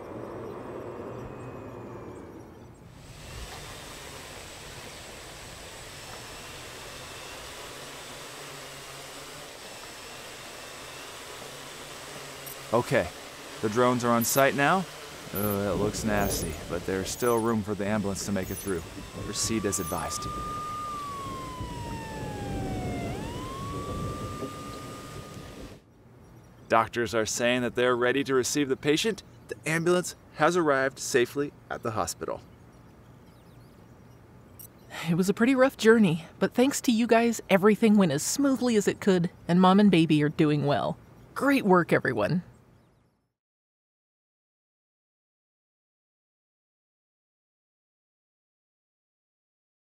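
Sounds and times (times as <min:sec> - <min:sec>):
ambulance siren wailing: 0:00.0 - 0:02.8, 0:15.3 - 0:25.8
storm wind and rain hiss: 0:00.0 - 0:07.7, 0:12.4 - 0:25.8.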